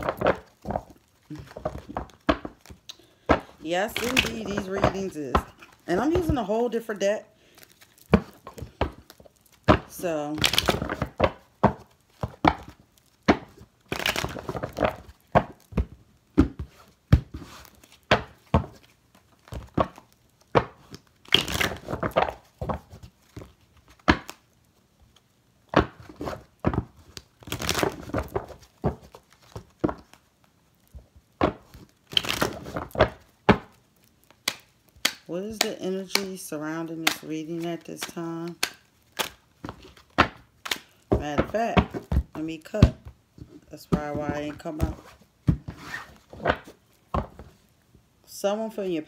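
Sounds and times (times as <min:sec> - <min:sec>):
cards being shuffled: 0:00.0 - 0:24.5, 0:25.1 - 0:47.7.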